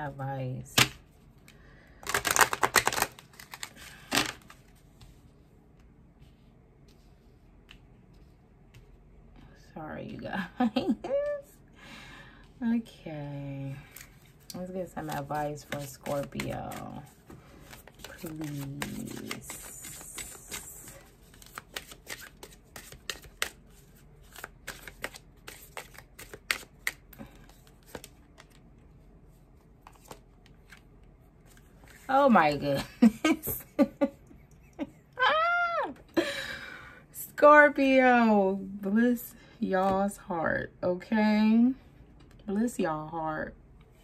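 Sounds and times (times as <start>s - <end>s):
cards being riffle-shuffled: 2.0s - 5.2s, 13.9s - 28.7s, 29.8s - 32.1s.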